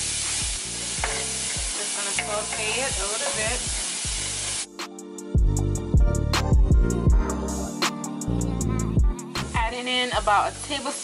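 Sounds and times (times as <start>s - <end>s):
vegetables sizzling in a skillet: 0.0s - 4.8s, 9.6s - 11.0s
music with heavy drum beat: 0.0s - 10.5s.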